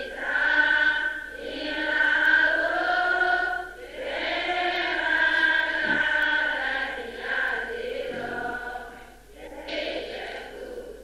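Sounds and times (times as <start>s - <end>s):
group chanting in unison: 0.0s - 11.0s.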